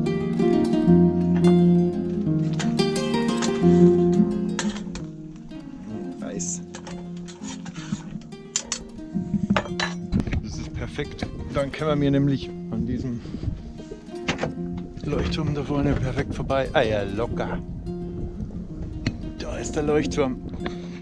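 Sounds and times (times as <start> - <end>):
plucked string background music: 0.0 - 21.0.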